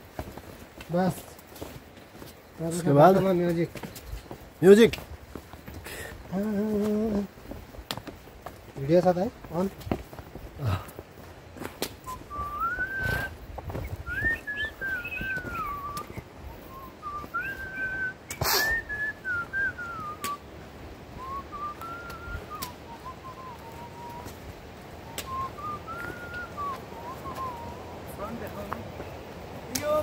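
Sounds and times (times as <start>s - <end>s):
person whistling a tune: 12.1s - 13.3s, 14.0s - 20.4s, 21.2s - 24.3s, 25.1s - 27.8s.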